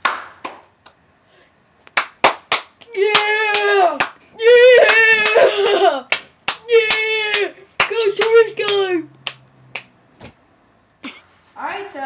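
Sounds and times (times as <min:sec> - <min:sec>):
person clapping: 0:00.0 - 0:01.0, 0:01.9 - 0:04.2, 0:04.8 - 0:09.9
high-pitched cheering whoops: 0:02.9 - 0:07.6.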